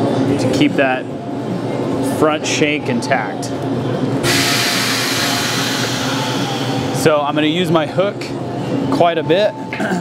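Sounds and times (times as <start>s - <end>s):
low machine hum: 0.0s - 10.0s
loud steady hiss: 4.2s - 7.3s.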